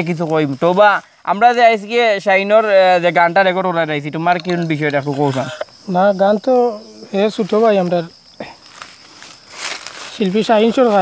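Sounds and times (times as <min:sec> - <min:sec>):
man talking: 0:00.0 - 0:08.6, 0:10.1 - 0:11.0
high insect drone: 0:00.0 - 0:11.0.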